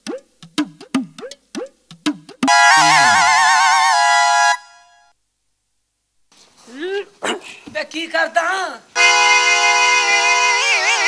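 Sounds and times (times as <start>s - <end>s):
synth music cue: 2.4s - 5.0s.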